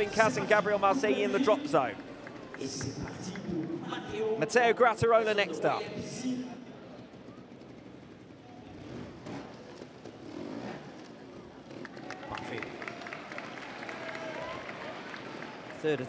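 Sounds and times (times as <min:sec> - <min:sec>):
motorcycle engine revving: 0:06.0 - 0:12.8.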